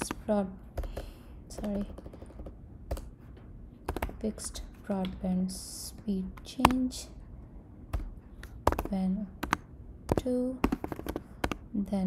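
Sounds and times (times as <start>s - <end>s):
computer keyboard keystrokes: 0.8s - 3.1s, 7.9s - 11.6s.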